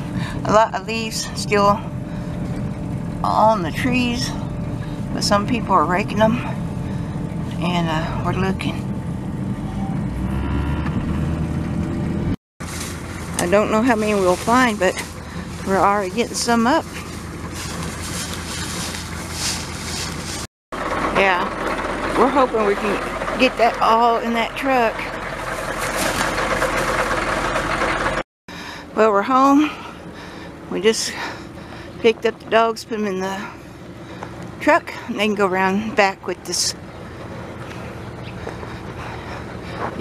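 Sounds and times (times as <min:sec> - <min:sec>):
outdoor noise: 0:00.0 - 0:40.0
truck engine and road noise: 0:00.0 - 0:40.0.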